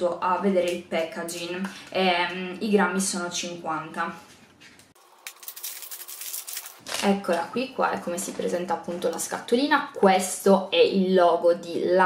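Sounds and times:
packaging rustling and crackling: 5.0s - 7.2s.

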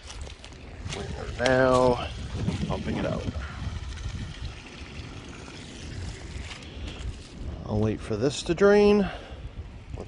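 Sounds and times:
water gushing onto leaves: 0.0s - 9.1s
wind buffeting microphone: 0.0s - 10.0s.

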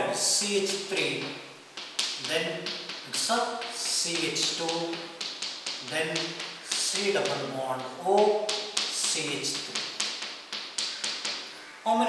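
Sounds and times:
chalk tapping on blackboard: 0.4s - 11.6s.

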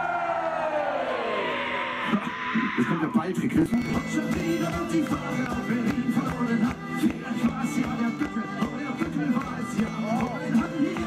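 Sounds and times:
siren-like wail sliding down: 0.0s - 3.3s.

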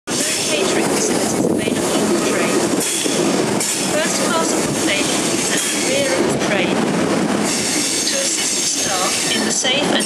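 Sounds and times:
train wheels running on rail: 0.1s - 10.0s.

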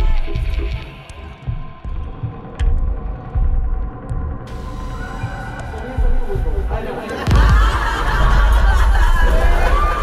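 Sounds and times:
low heartbeat-like pulses: 0.0s - 9.3s.

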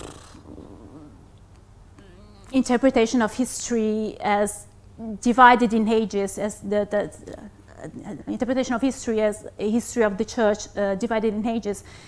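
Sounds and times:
wavering hesitant hum: 0.0s - 3.4s
low room hum: 0.0s - 12.0s.

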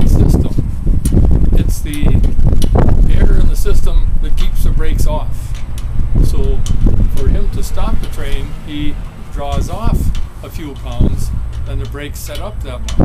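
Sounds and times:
man talking: 0.0s - 0.7s, 1.5s - 2.3s, 3.0s - 5.6s, 6.2s - 12.9s
wind buffeting microphone: 0.0s - 13.0s.

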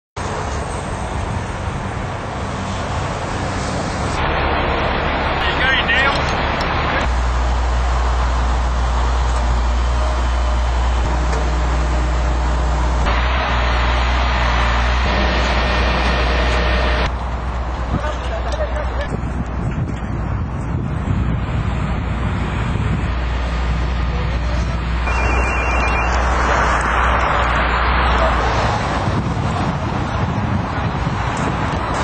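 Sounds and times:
freeway traffic noise: 0.2s - 32.0s
low outdoor rumble: 0.2s - 32.0s.

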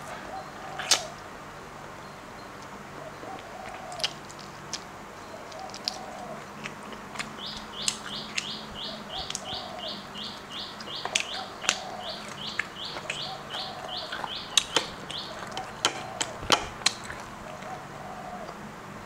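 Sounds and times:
bird chirping: 0.0s - 1.2s, 5.2s - 18.6s
chewing clicks and crunches: 3.3s - 9.6s, 10.8s - 17.8s
lower bird call: 7.4s - 16.8s.

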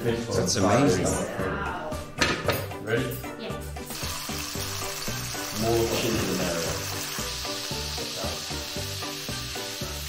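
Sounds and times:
background music: 0.0s - 10.0s
hot oil sizzling in wok: 3.8s - 10.0s.

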